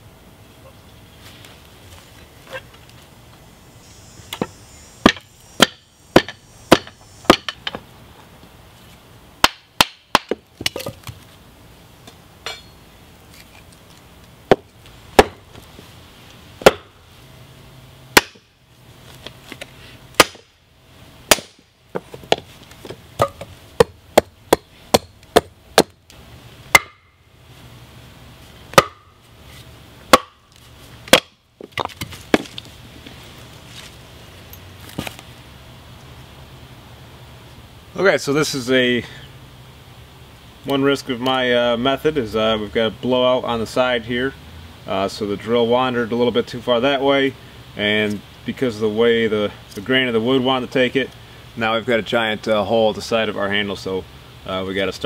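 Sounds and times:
hammer striking axe into wood: 4.4s - 7.8s, 9.4s - 10.9s, 14.5s - 15.4s, 16.6s - 16.9s, 18.2s - 18.5s, 20.2s - 20.5s, 21.3s - 21.6s, 23.2s - 26.0s, 26.7s - 27.1s, 28.7s - 29.1s, 30.1s - 30.4s, 31.1s - 32.5s.

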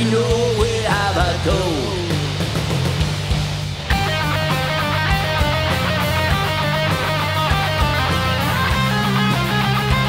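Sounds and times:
metal band drums and bass: 0.0s - 10.0s
lead electric guitar riff: 3.8s - 10.0s.

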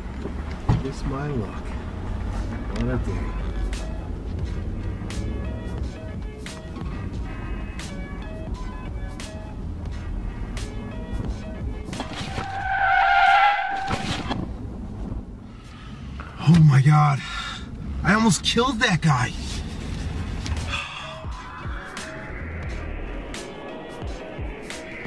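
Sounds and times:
background music with steady beat: 2.0s - 12.8s, 19.5s - 25.0s
tyre squeal: 12.0s - 14.4s.

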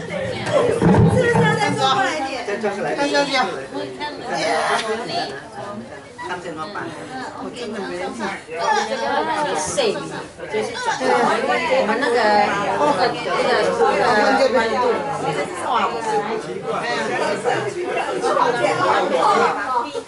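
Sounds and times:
babble of overlapping conversation: 0.0s - 20.0s.

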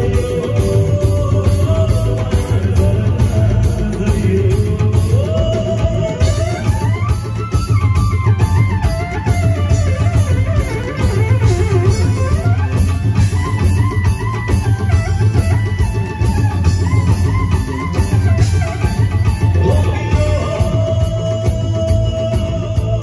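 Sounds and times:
bass guitar: 0.0s - 23.0s
drum kit: 0.0s - 23.0s
sliding lead melody: 0.0s - 23.0s.

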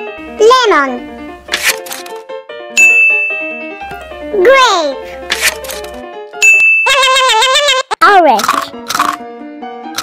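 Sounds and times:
light background music: 0.0s - 7.0s, 8.0s - 10.0s
bell-like chime ding: 2.8s - 3.6s, 6.4s - 6.9s.

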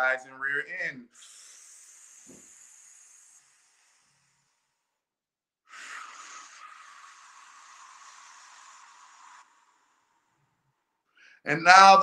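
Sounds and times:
man breathing out through lips: 1.1s - 5.0s, 5.7s - 11.4s.

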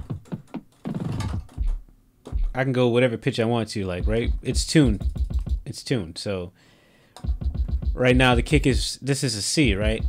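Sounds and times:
kick drum thumps: 1.4s - 2.6s, 4.0s - 5.6s, 7.2s - 8.8s, 9.7s - 10.0s
deeper kick drum: 1.6s - 2.6s, 4.0s - 5.6s, 7.3s - 8.8s, 9.7s - 10.0s.

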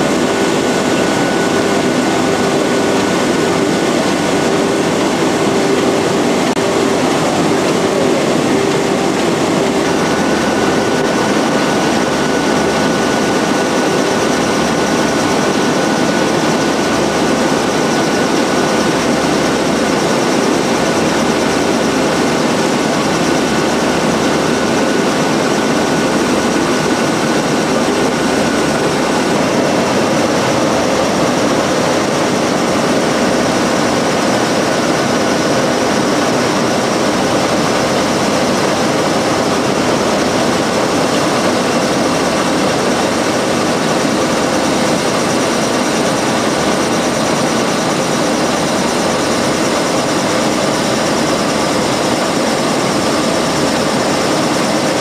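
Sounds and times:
cutting machine running: 0.0s - 55.0s
faint high machine whine: 0.0s - 55.0s.

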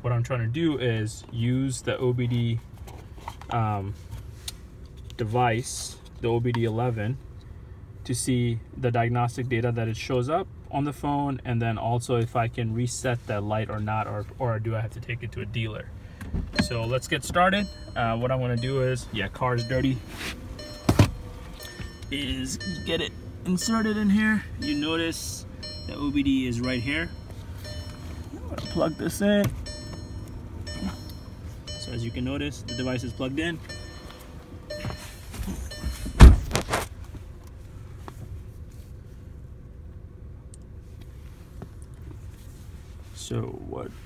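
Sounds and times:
low steady rumble: 0.0s - 44.0s
handling knocks in car cabin: 20.6s - 21.2s.

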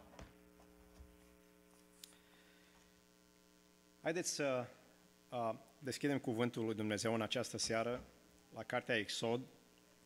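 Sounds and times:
electrical mains hum: 0.0s - 10.0s
man speaking into microphone: 4.0s - 9.6s.

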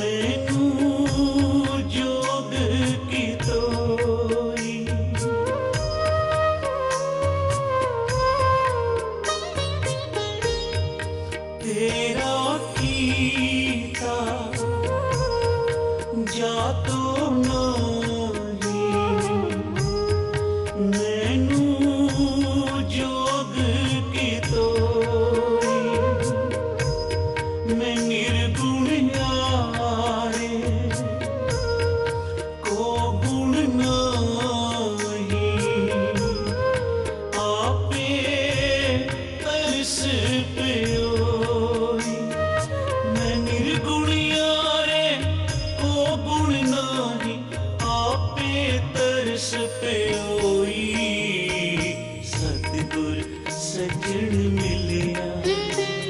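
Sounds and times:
man singing: 0.0s - 56.0s
tabla strokes: 0.0s - 56.0s
deep pulsing bass drum: 16.8s - 20.7s.

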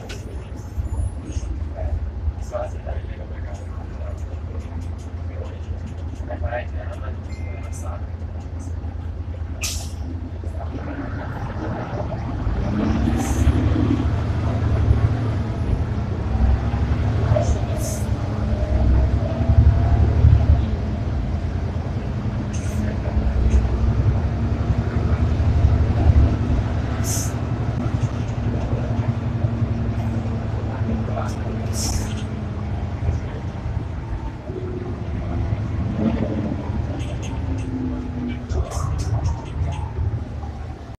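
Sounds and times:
bus engine and road rumble: 0.0s - 40.9s
drivetrain whine: 0.0s - 40.9s.

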